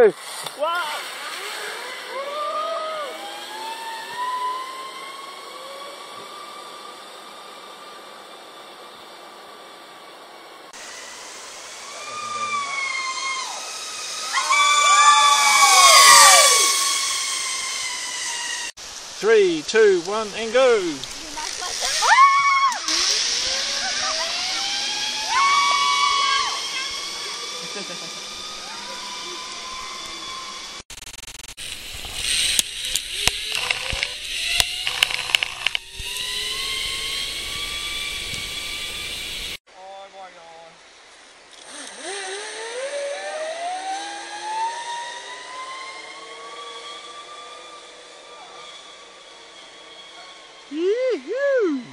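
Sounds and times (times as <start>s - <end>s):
zipline pulleys whining on cable: 0.0s - 39.6s, 41.4s - 51.9s.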